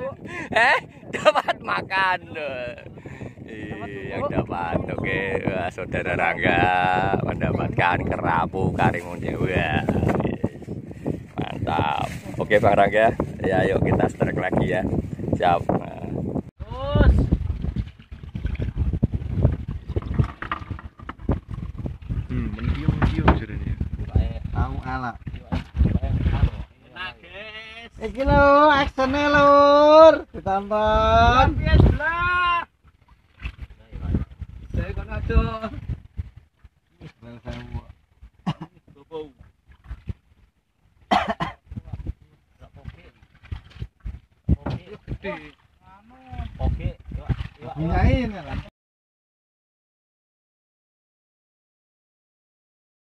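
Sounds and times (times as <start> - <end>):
wind and water noise: 0.0 - 48.7.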